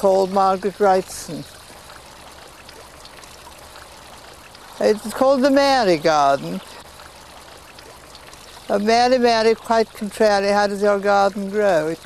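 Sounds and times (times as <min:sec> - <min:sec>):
fountain water pouring and trickling: 0:00.0 - 0:12.0.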